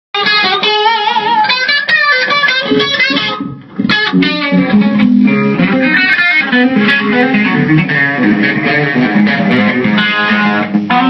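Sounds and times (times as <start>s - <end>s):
electric guitar single notes: 0.2s - 11.0s.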